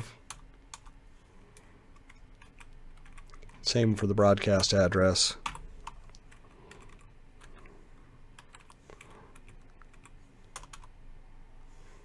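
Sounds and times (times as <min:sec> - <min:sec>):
keyboard typing: 0:00.3 - 0:01.0, 0:02.0 - 0:03.6, 0:05.4 - 0:07.7, 0:08.4 - 0:10.9.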